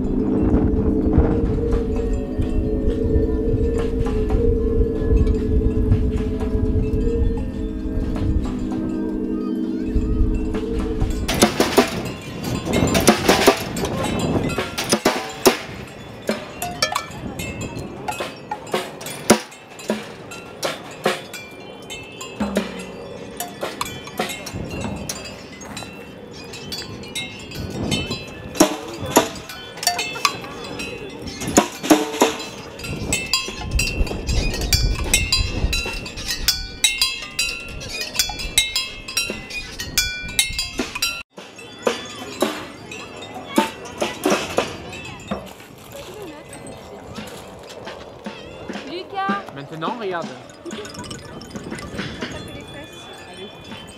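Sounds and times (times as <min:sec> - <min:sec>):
metallic ringing tones: 0:00.0 - 0:53.9
wind percussion knocking on drums: 0:00.0 - 0:53.9.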